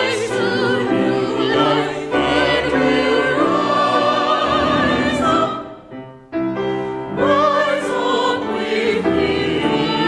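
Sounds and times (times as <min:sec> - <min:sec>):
choir singing sacred music: 0:00.0 - 0:10.0.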